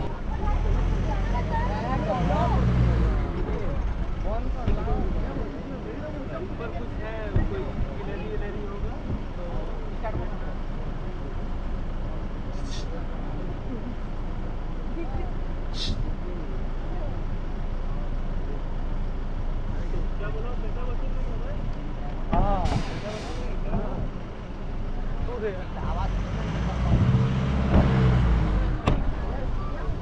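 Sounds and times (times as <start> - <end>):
chatter of passengers: 0.0 - 30.0
vehicle engine running: 0.0 - 30.0.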